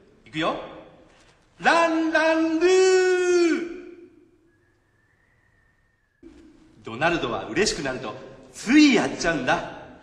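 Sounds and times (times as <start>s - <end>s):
voice: 1.6s - 3.8s, 6.2s - 9.8s.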